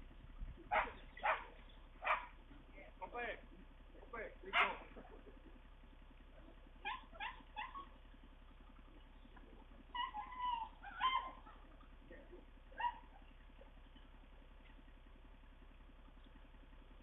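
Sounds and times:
dog yelping and whining: 0.7 - 2.3, 6.8 - 8.0, 9.9 - 11.8, 12.7 - 13.3.

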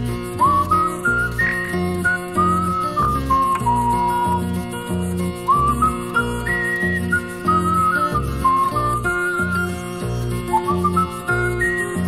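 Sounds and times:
instrumental children's song: 0.0 - 12.0
person whistling a tune: 0.2 - 12.0.

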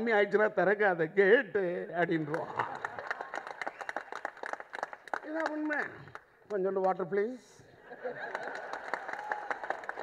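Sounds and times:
audience clapping: 2.2 - 7.0, 8.2 - 10.0.

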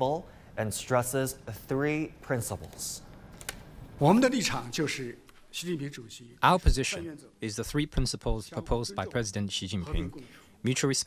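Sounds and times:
man speaking: 0.0 - 3.1, 4.0 - 11.0.

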